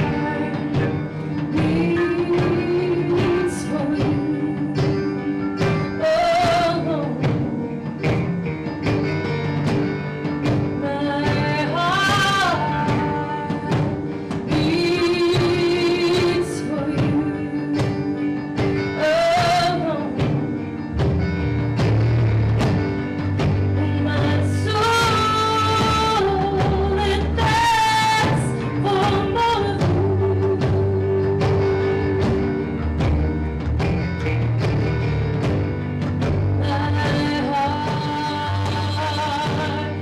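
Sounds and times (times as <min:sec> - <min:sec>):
woman singing lead: 0:00.0 - 0:08.9, 0:09.8 - 0:21.0, 0:23.1 - 0:33.6, 0:36.4 - 0:40.0
drum kit with cymbals: 0:00.0 - 0:40.0
electric guitar: 0:00.0 - 0:40.0
electric keyboard: 0:00.0 - 0:40.0.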